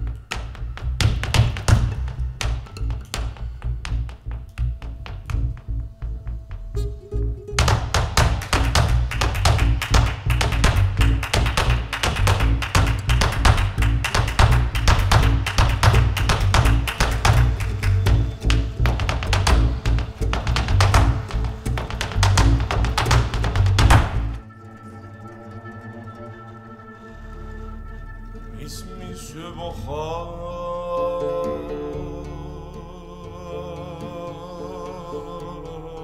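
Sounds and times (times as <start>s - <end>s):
dancer's footwork taps: 0.0s - 6.3s, 7.5s - 24.4s
double bass low notes: 0.0s - 24.4s
guitar: 0.0s - 36.0s.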